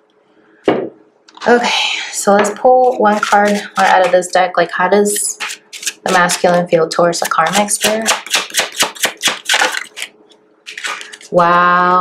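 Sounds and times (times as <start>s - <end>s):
cards being shuffled: 5.4s - 6.4s, 8.0s - 10.1s, 10.7s - 11.4s.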